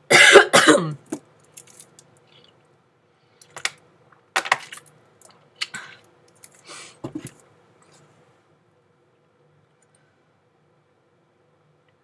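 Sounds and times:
woman coughing: 0:00.1 - 0:01.1.

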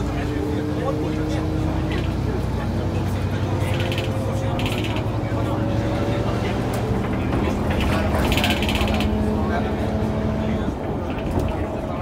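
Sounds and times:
diesel bus engine droning: 0:00.0 - 0:12.0
bus body and doors rattling: 0:00.8 - 0:12.0.

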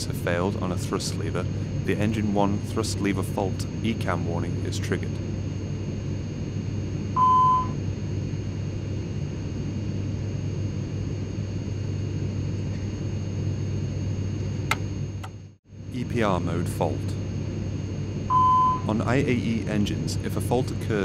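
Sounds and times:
cockpit rumble and hum: 0:00.0 - 0:21.0
pushbutton click: 0:14.7 - 0:15.4.

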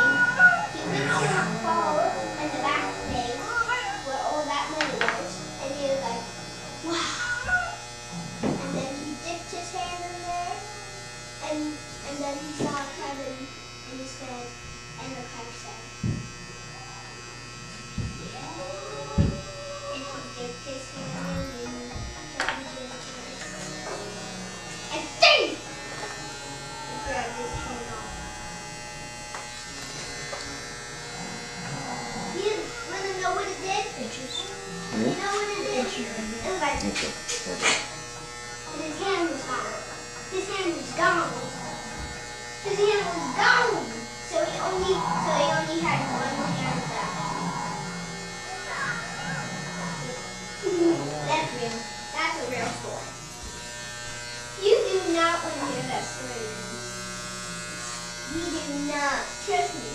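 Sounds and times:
electric hair clippers buzzing: 0:00.0 - 0:59.9
voices talking: 0:00.0 - 0:59.9.

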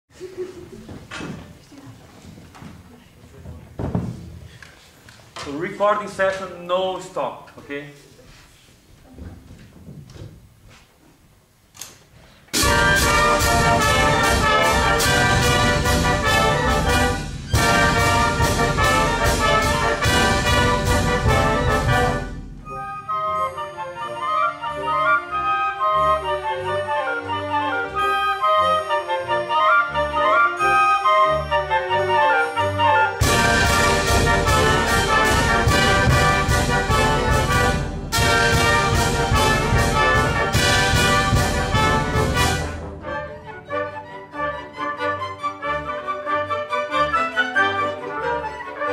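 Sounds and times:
orchestra playing chords: 0:12.5 - 0:48.9
orchestral melody: 0:12.5 - 0:48.9.

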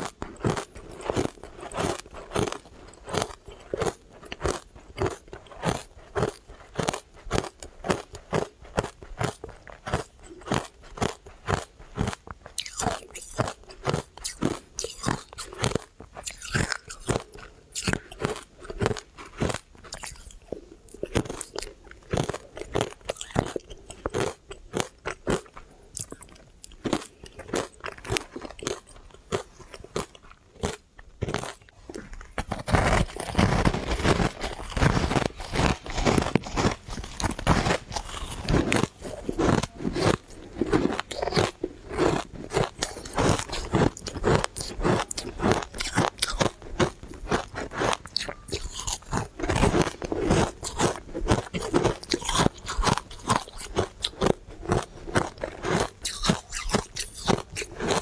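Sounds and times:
crunchy ice chewing: 0:00.0 - 0:58.0.

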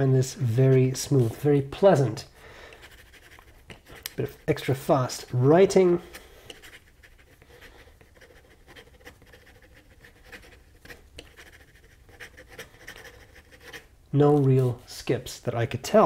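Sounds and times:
pen nib scratching on paper: 0:02.8 - 0:13.9.

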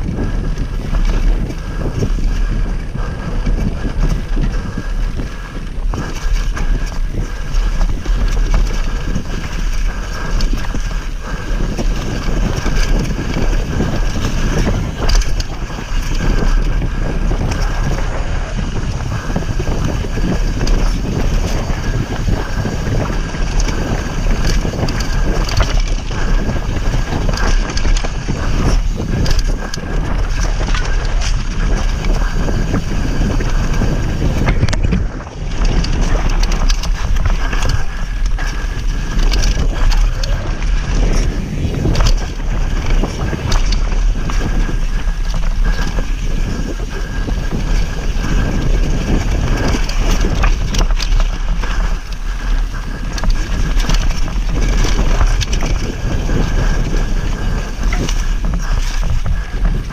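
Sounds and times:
bike rattling and knocking: 0:00.0 - 0:59.9
bike tyres rolling over dirt: 0:00.0 - 0:59.9
wind buffeting microphone: 0:00.0 - 0:59.9.

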